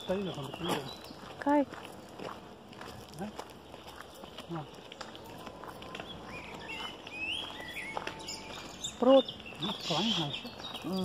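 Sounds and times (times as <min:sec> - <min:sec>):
woman speaking: 0:00.0 - 0:01.8, 0:08.9 - 0:11.0
footsteps crunching on gravel: 0:00.0 - 0:11.0.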